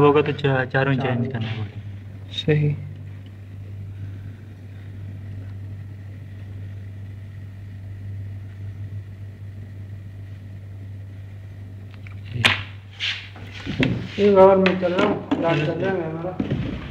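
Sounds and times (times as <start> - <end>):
low mechanical hum: 0.0 - 16.9.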